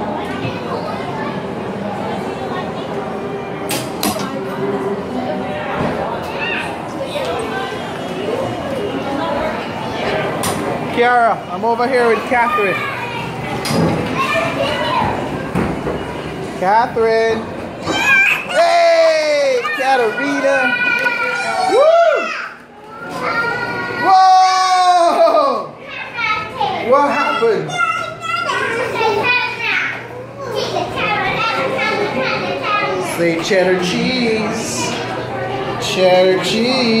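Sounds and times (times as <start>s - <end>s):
children calling and chattering: 0.0s - 37.0s.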